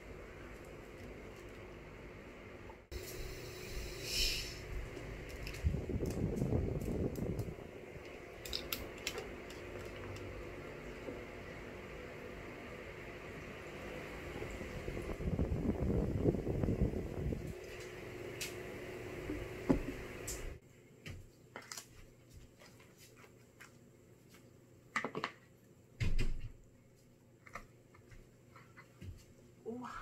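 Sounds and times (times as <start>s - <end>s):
steady background hum: 0.0s - 30.0s.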